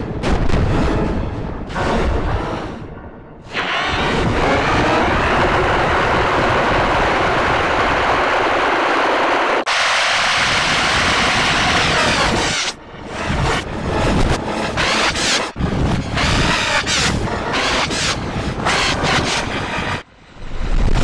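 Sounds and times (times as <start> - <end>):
distorted scream rumbling noise: 3.4 - 21.0.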